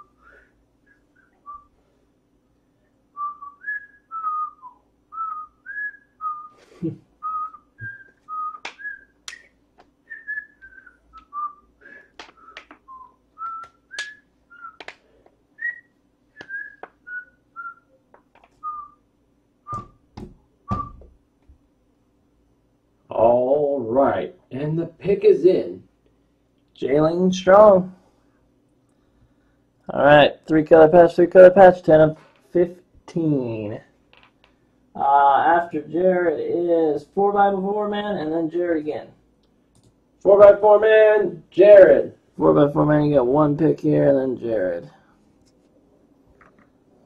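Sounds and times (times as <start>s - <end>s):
person whistling a tune: 3.2s - 6.6s, 7.2s - 9.5s, 10.1s - 14.8s, 15.6s - 18.0s, 20.7s - 21.0s.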